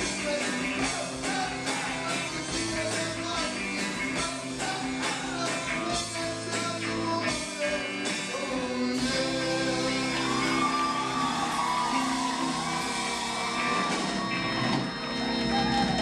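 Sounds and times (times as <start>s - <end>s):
person singing: 0.0s - 14.3s, 15.3s - 16.0s
drum kit: 0.0s - 16.0s
electric guitar: 0.0s - 16.0s
keyboard: 0.0s - 16.0s.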